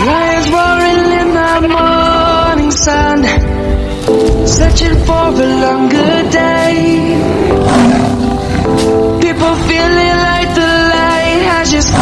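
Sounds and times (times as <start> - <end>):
backing music: 0.0 - 12.0
lion roar sound effect: 5.9 - 8.8.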